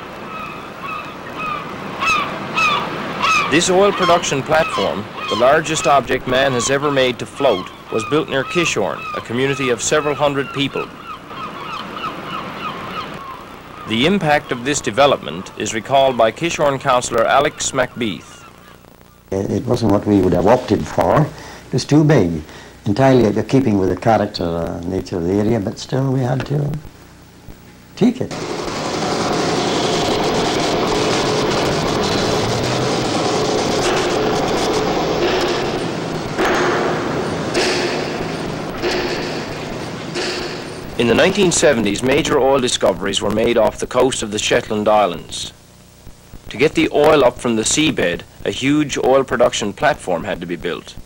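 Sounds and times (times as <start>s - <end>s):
construction machinery din: 0.0s - 12.7s, 28.3s - 44.2s
birds calling: 0.0s - 21.8s, 28.3s - 44.0s
faint hum: 0.0s - 51.0s
steady hiss: 0.0s - 51.0s.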